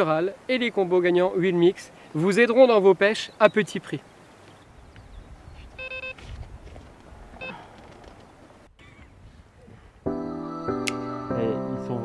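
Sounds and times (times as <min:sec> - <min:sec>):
electronic bite alarm beeping: 0:05.8 - 0:06.2.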